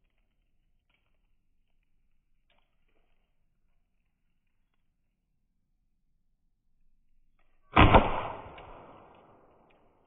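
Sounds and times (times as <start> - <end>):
launcher firing sharp double crack: 7.8 - 9.4.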